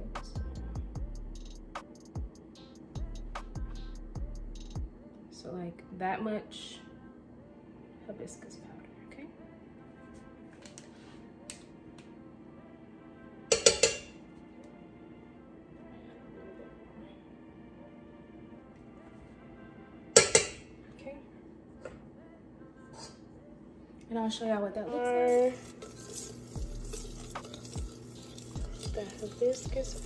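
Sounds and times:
metal spoon clinking on saucepan: 13.5 - 14.1, 20.2 - 20.6.

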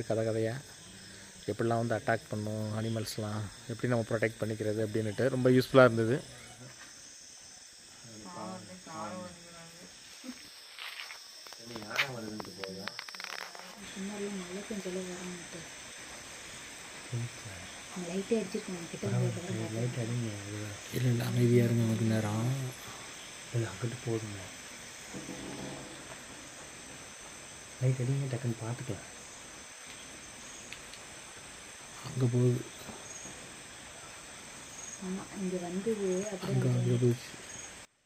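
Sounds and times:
crickets chirping: 0.0 - 38.0.

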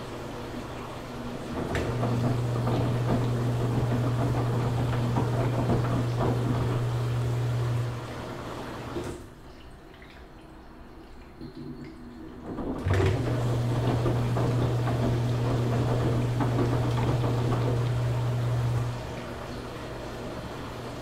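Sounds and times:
washing machine humming: 0.0 - 21.0
water sloshing: 0.0 - 21.0.

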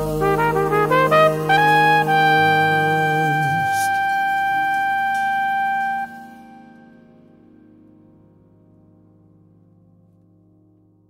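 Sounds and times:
jazz brass horn playing: 0.0 - 7.1
lower held chord: 0.0 - 11.0.

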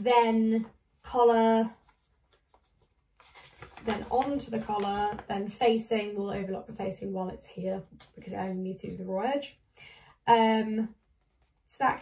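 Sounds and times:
paper sheets rustling: 1.5 - 5.6.

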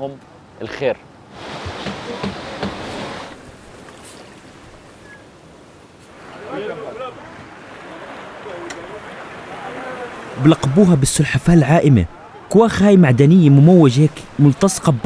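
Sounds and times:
waves washing against rocky shore: 1.3 - 4.9, 6.1 - 11.4
faint voices talking: 6.1 - 15.0.

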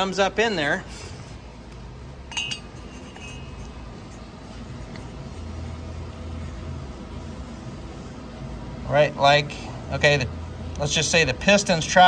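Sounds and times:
low steady hum: 0.0 - 12.0
metal parts clinking: 2.3 - 3.8.

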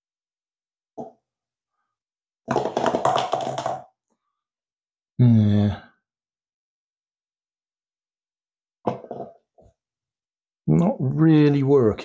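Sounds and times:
paper cup rattling on floor: 2.5 - 4.0.

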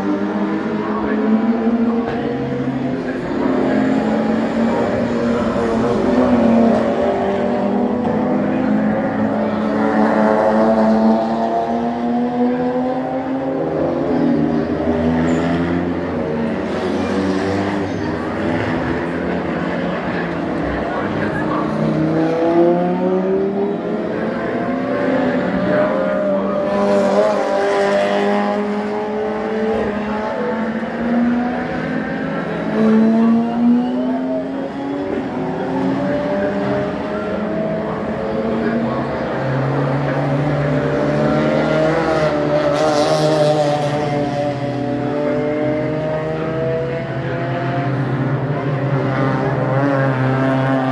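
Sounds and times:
race car engines passing: 0.0 - 50.9.

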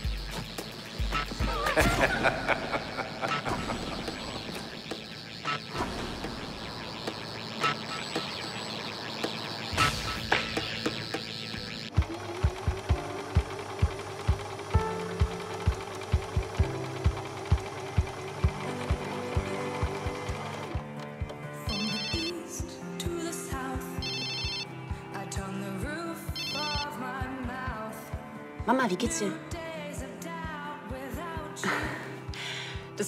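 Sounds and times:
background music with steady beat: 0.0 - 33.0
mobile phone ringing: 21.6 - 22.6, 23.9 - 24.8, 26.4 - 27.0.

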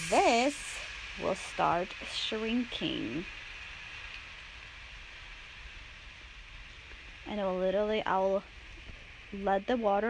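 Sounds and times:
water draining from hose hissing: 0.0 - 7.3.

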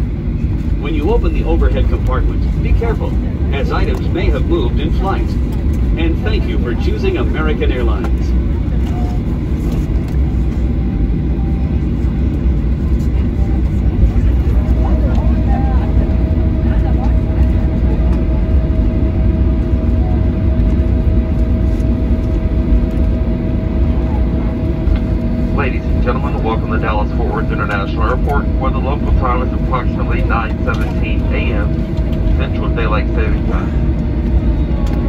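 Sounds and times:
low rumble of aircraft taxiing: 0.0 - 35.0
steady whine: 0.0 - 35.0.

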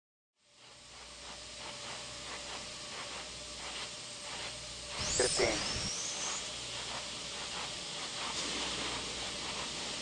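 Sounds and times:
steady hiss: 0.4 - 10.0.

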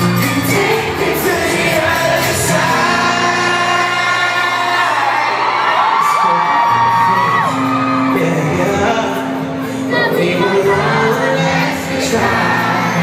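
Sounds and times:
live band backing: 0.0 - 13.0
crowd whooping: 1.4 - 9.1.

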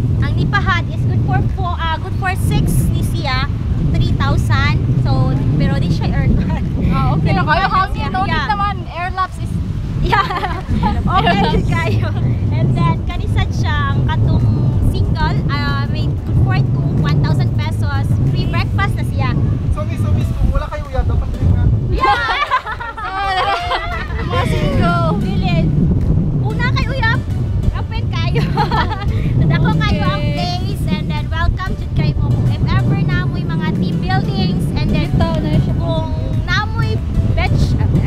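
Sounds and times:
wind buffeting microphone: 0.0 - 38.0
woman talking: 0.2 - 19.4, 21.9 - 25.7, 26.4 - 38.0.

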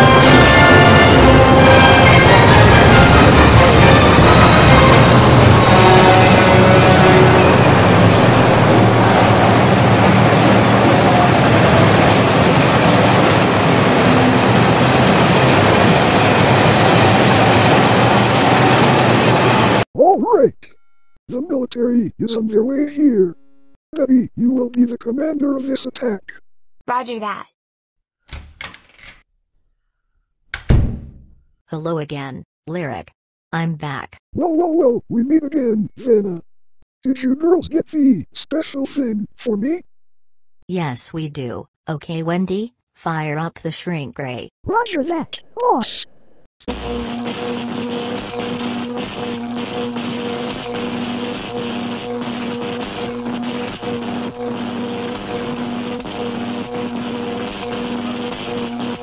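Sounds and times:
dense noisy rush: 1.5 - 19.8, 46.7 - 59.0
pulsing electronic buzz: 46.6 - 59.0.

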